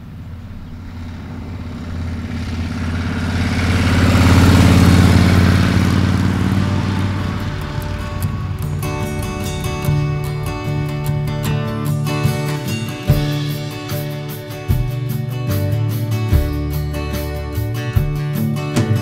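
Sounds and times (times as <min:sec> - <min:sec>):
motorcycle engine passing: 0:00.0 - 0:19.0
strummed guitar music: 0:03.4 - 0:19.0.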